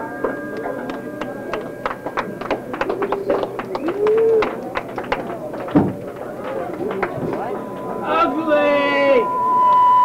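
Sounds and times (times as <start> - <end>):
audience handclaps: 0.0 - 7.9
crowd calls: 0.0 - 10.0.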